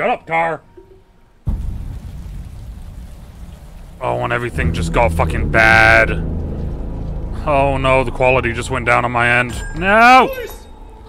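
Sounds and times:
steady rain: 1.5s - 5.3s
low rumble: 1.5s - 9.8s.

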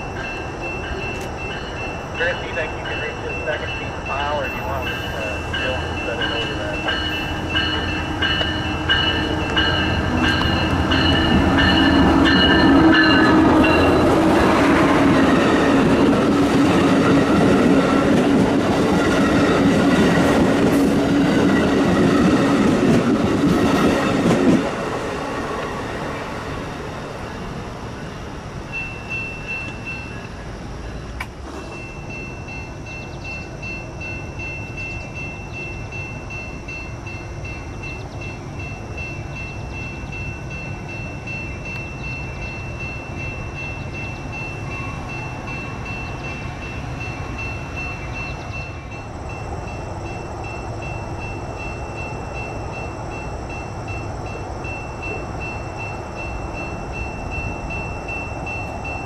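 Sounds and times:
crossing warning bell ringing: 0.0s - 59.0s
train wheels rumbling on rails: 0.0s - 59.0s.

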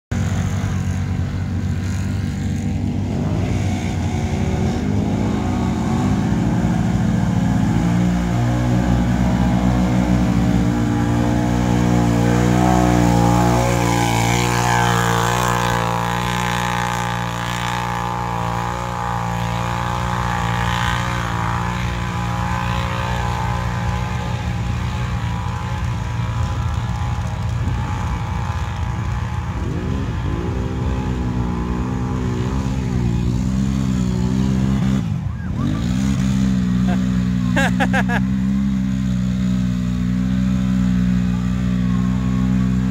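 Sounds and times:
atv engines revving: 0.1s - 42.9s
quads churning through mud: 0.1s - 42.9s.

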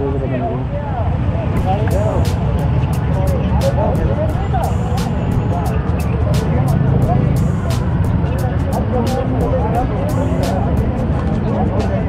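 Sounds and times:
traffic rumble: 0.0s - 12.0s
voices: 0.0s - 12.0s
motorcycles idling: 1.6s - 12.0s
music with crisp beat: 1.6s - 12.0s.

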